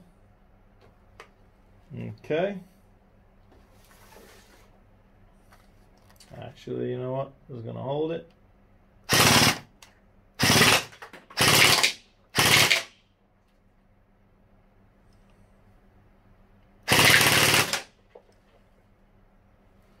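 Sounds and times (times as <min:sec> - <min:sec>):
gel blaster firing bursts: 0:09.1 - 0:09.7, 0:10.4 - 0:13.0, 0:16.9 - 0:17.9.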